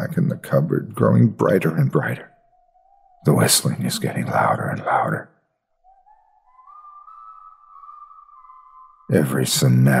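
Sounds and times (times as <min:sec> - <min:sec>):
eerie high whistling: 0:01.6 - 0:10.0.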